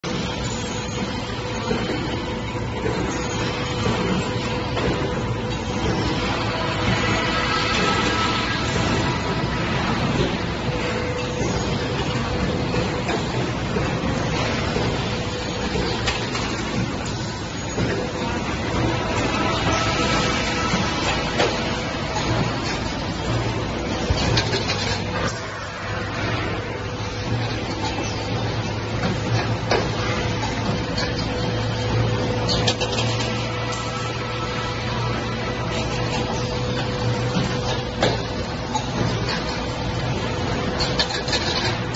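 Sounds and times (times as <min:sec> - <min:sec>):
constant humming tone: 0:00.0 - 0:41.9
machinery rumble and hiss: 0:00.0 - 0:41.9.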